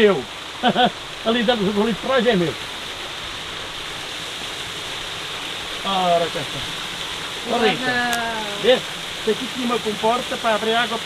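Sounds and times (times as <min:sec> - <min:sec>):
small waterfall rushing: 0:00.0 - 0:11.0
stream flowing: 0:00.0 - 0:11.0.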